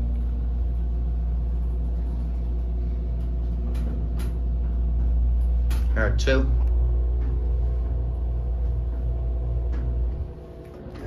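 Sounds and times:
elevator low rumble: 0:00.0 - 0:11.0
faint steady hum: 0:00.0 - 0:11.0.

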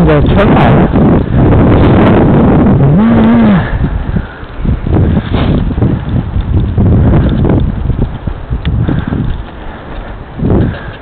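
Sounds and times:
wind buffeting microphone: 0:00.0 - 0:11.0
person humming: 0:02.8 - 0:03.8.

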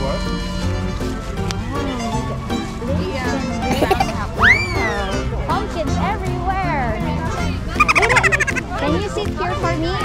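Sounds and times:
turkey gobbling: 0:07.8 - 0:08.7.

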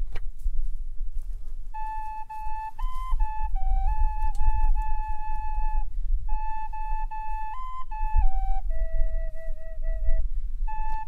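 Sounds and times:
steady low rumble: 0:00.0 - 0:07.1
flute melody: 0:01.7 - 0:11.0.

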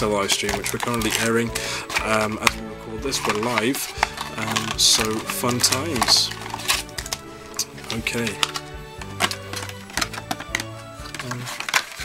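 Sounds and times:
background music with bass line: 0:00.0 - 0:11.6
plastic blister pack crinkling: 0:00.0 - 0:12.0.

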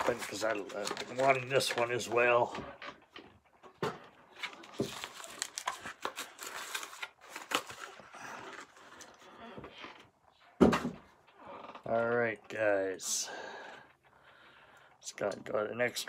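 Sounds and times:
packaging crinkling and tearing: 0:00.0 - 0:02.2, 0:04.3 - 0:09.2.

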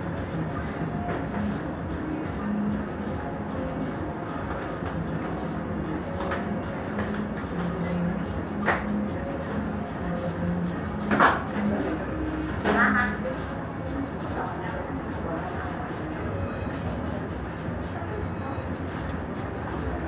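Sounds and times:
faint indistinct voices: 0:00.0 - 0:20.0.

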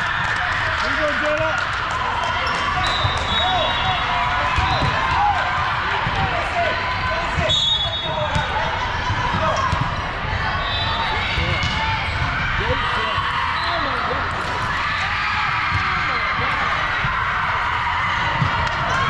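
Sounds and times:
hubbub of many voices: 0:00.0 - 0:19.0
volleyballs hit and bouncing: 0:00.0 - 0:19.0.

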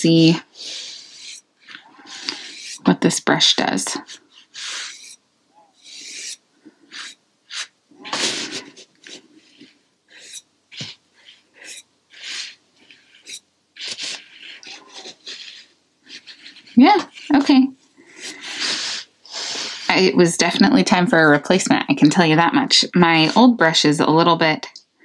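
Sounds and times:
brush strokes on canvas paper: 0:00.1 - 0:20.1.

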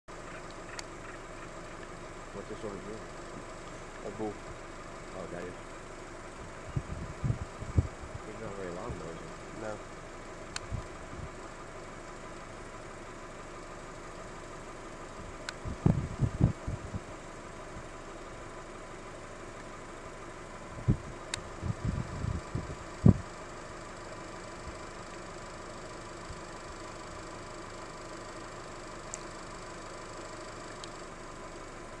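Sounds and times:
low background hum: 0:00.1 - 0:32.0
low rumbling bumps: 0:06.4 - 0:09.0, 0:15.6 - 0:17.1.

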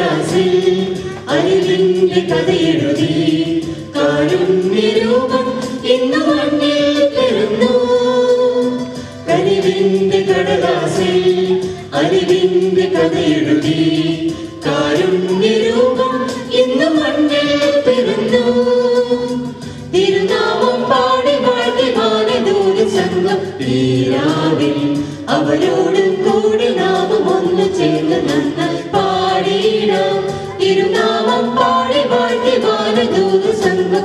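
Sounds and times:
mixed choir singing: 0:00.0 - 0:34.0.

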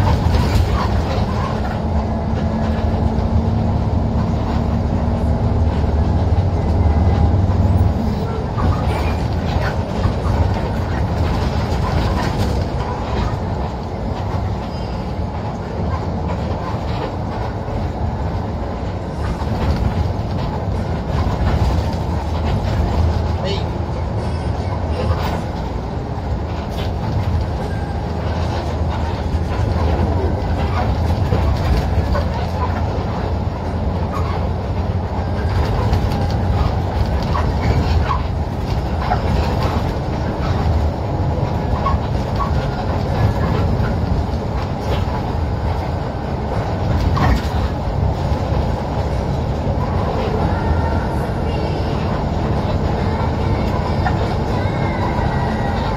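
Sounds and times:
engine and road rumble: 0:00.0 - 0:55.9.

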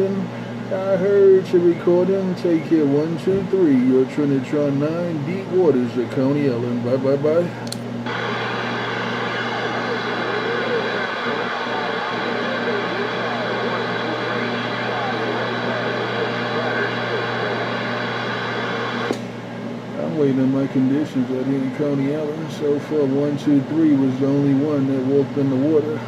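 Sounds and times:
faint garbled radio voices: 0:00.0 - 0:19.1
radio static: 0:08.1 - 0:19.2.

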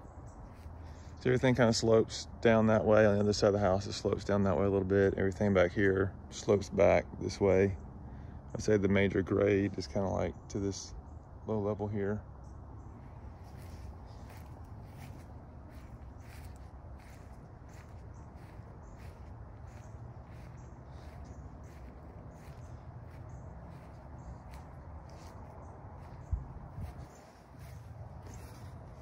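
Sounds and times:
low rumble of wind: 0:00.0 - 0:29.0
footsteps on grass: 0:00.5 - 0:00.9, 0:12.9 - 0:29.0.

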